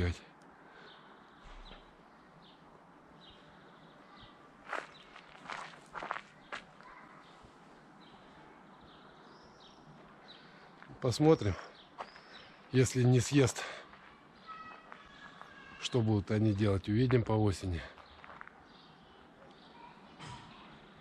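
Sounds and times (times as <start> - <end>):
scuffing footsteps: 4.6 - 6.8, 18.0 - 18.6.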